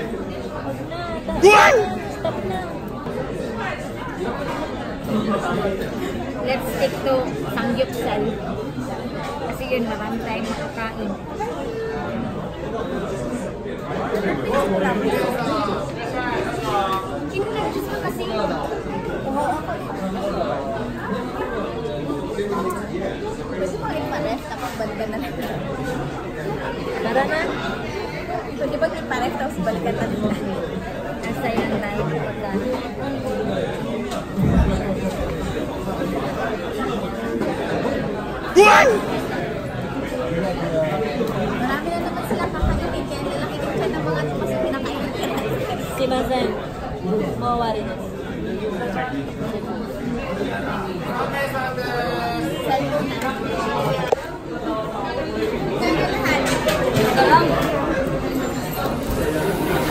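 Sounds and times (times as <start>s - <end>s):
people chattering: 0.0s - 3.1s, 35.0s - 46.6s
restaurant chatter: 0.0s - 59.9s.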